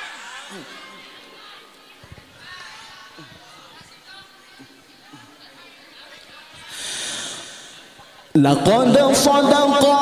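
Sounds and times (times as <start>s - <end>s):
deep in-breath into microphone: 6.7s - 8.1s.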